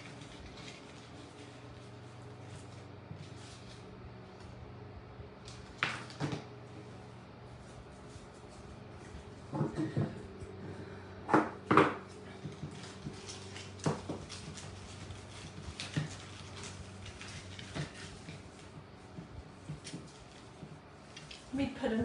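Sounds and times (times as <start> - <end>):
ribbon and plastic pieces rustling: 0.0 - 4.5, 12.2 - 22.0
faint steady hum: 0.0 - 22.0.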